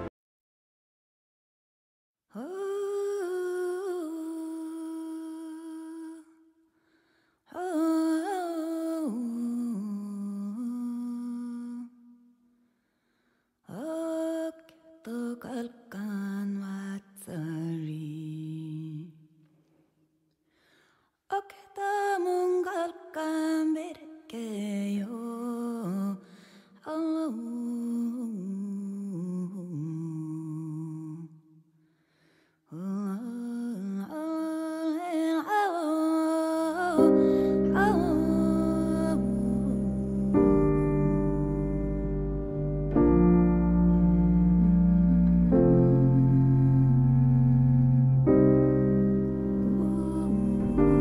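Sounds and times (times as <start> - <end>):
person humming a slow melody: 36.7 - 51.0.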